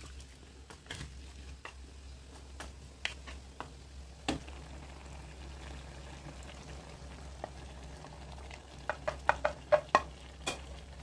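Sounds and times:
food cooking in a wok: 0.0 - 11.0.

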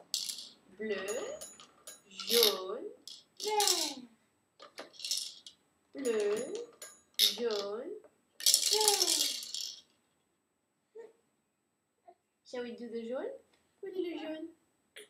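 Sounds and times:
plastic drums rattling: 0.0 - 4.0, 4.6 - 5.5, 8.4 - 9.8.

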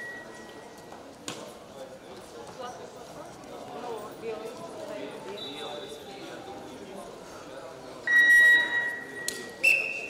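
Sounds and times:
higher-pitched whistle: 8.1 - 10.0
referee's whistle blast: 8.1 - 10.0.

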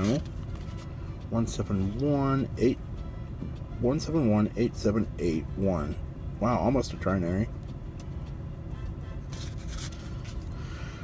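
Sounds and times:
paper banknotes rustling: 0.0 - 2.0, 9.3 - 10.5
low steady hum: 0.0 - 11.0.

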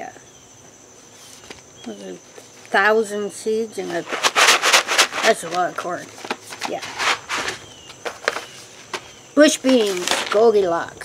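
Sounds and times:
paper packets rustling: 3.8 - 10.5.

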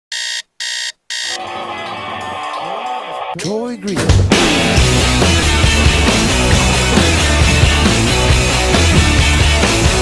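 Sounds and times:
alarm clock beeping: 0.1 - 2.6
music: 1.4 - 10.0.

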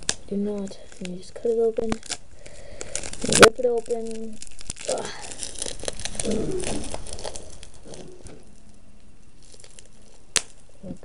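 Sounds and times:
plastic wrapper crinkling and tearing: 0.0 - 11.0.

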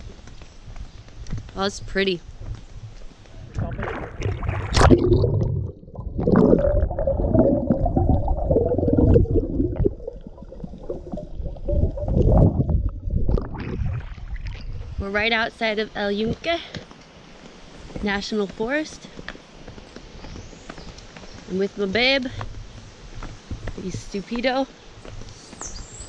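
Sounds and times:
underwater gurgling and bubbles: 3.4 - 15.1.

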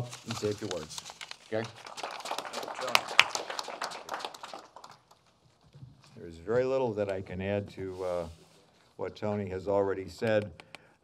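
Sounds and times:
small group applause: 1.5 - 5.4.

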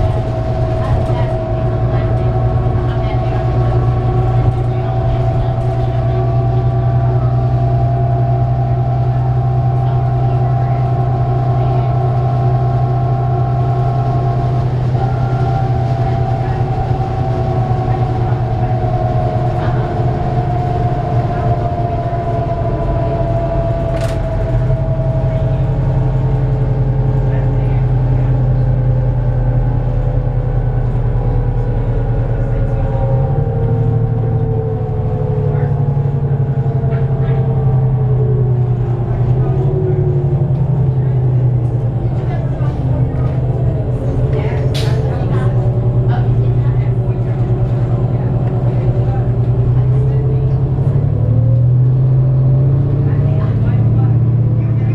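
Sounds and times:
bus diesel engine rumble: 0.0 - 54.9.

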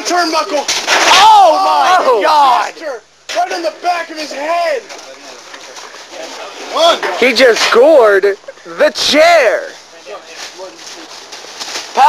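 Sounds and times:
low steady background noise: 0.0 - 12.0.

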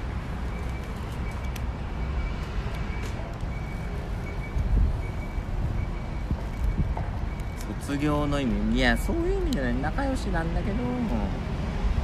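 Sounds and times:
wind buffeting microphone: 4.2 - 9.5.

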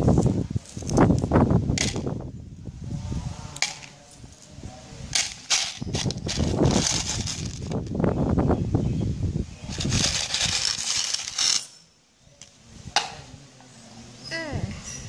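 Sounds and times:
bangle pieces rattling in plastic tub: 5.2 - 7.8, 9.7 - 11.8
pieces clattering onto tiled floor: 5.2 - 7.8, 9.8 - 11.8.

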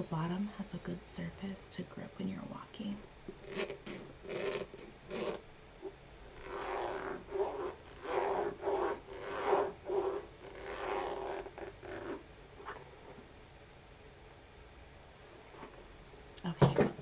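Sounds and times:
fingernails scratching a boot: 3.4 - 5.4, 6.4 - 12.8.

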